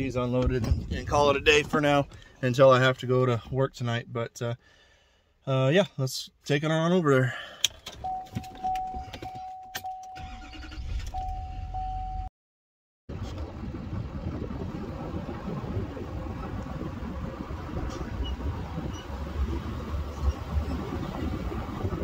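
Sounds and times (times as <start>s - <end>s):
road rumble: 0.0s - 3.8s, 13.1s - 22.0s.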